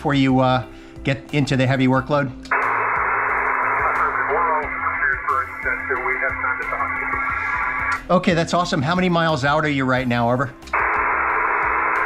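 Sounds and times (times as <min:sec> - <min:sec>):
radio static hiss: 0:02.5 - 0:08.1, 0:10.8 - 0:12.0
muffled voice over radio: 0:03.7 - 0:07.8.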